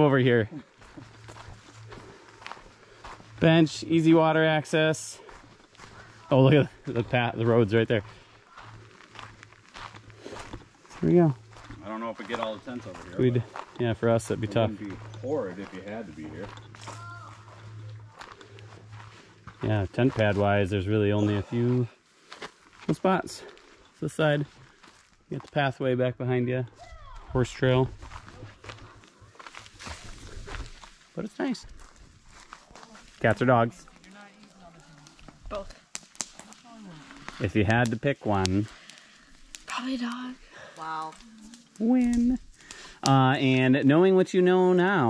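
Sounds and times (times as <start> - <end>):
low steady hum: 0.0 - 21.7
footsteps on pine needles: 0.6 - 25.6, 26.7 - 43.0.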